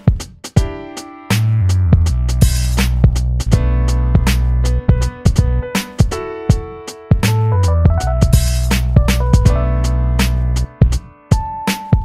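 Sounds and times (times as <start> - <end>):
held keyboard notes: 0.6 - 12.0
deep bass line: 1.3 - 5.7, 7.2 - 11.1
sharp drum hits: 2.4 - 9.7.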